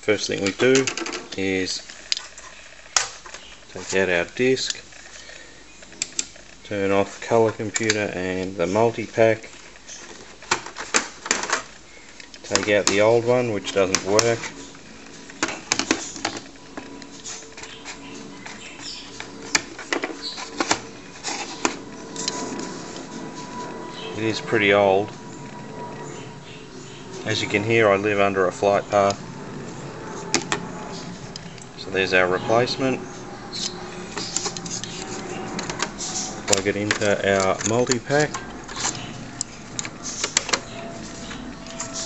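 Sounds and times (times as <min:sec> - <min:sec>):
steady background hiss: 0:00.0 - 0:42.0.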